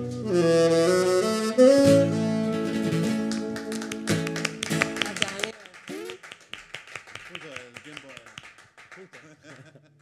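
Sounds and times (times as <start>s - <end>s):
live band playing: 0.0s - 6.3s.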